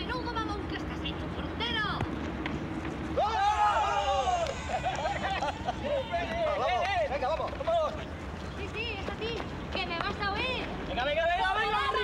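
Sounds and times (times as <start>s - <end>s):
low outdoor hum: 0.0s - 12.0s.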